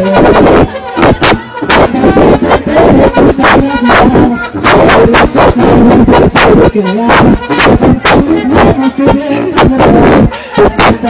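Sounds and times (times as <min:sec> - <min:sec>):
live brass band: 0:00.0 - 0:11.0
man singing into microphone: 0:00.0 - 0:11.0.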